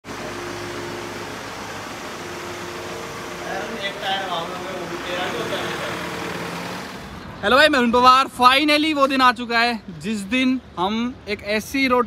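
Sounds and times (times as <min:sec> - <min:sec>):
diesel engine running: 0:00.0 - 0:07.6.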